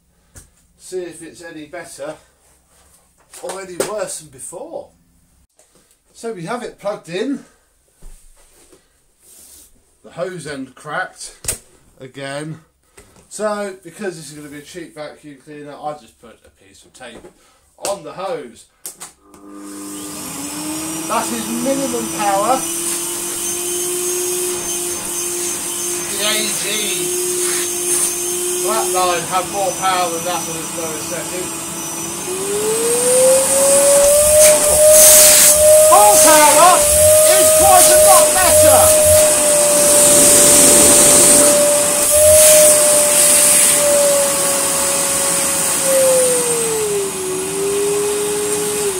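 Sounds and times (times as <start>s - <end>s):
vacuum cleaner motor whine: 19.2s - 48.9s.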